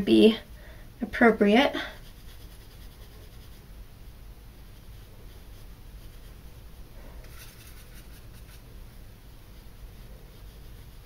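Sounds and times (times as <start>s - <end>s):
low steady hum: 0.0s - 11.0s
makeup brush swishing: 2.0s - 3.7s, 4.7s - 6.5s, 7.1s - 8.7s, 9.4s - 11.0s.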